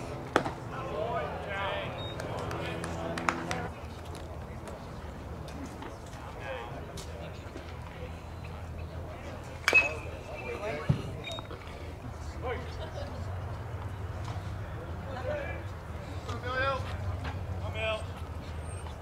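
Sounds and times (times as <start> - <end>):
voices chattering: 0.0 - 19.0.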